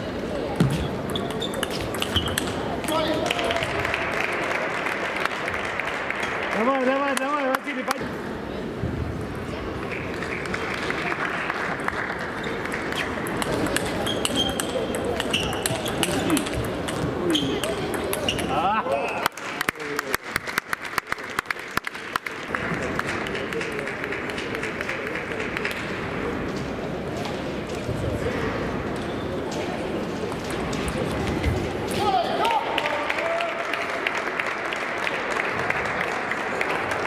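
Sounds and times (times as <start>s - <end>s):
chatter in a large hall: 0.0s - 37.0s
table tennis ball clicking: 1.0s - 2.6s, 13.2s - 18.5s.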